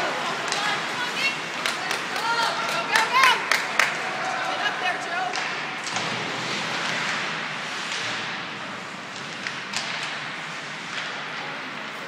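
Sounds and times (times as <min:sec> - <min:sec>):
spectators' voices: 0:00.0 - 0:06.0.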